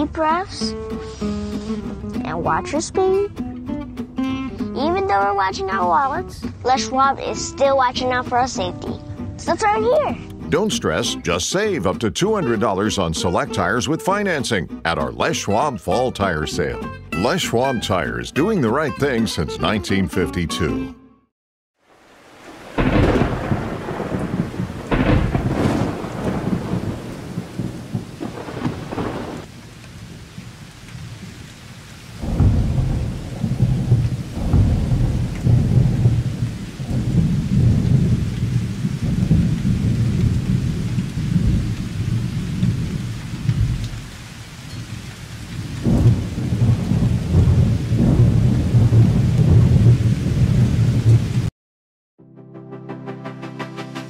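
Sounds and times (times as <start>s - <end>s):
rain: 4.3s - 14.2s, 21.8s - 51.5s
rolling thunder: 22.4s - 31.4s, 32.1s - 51.5s.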